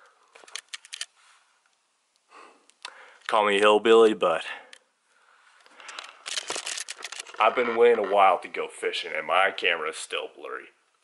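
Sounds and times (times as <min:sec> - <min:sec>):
camera handling rustles and knocks: 0:05.7 - 0:08.2.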